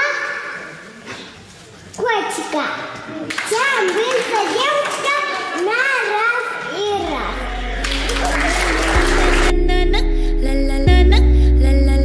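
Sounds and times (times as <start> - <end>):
child speaking sing-song: 3.5 - 10.0.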